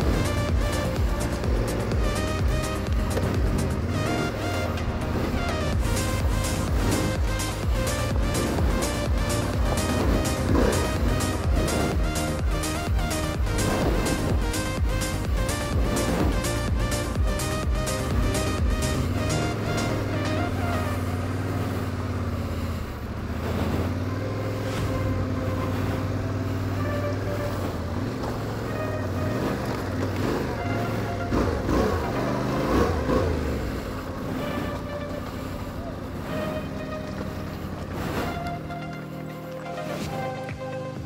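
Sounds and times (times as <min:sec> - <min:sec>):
electronic background music: 0:00.0 - 0:41.0
motorcycle engine revving: 0:00.0 - 0:41.0.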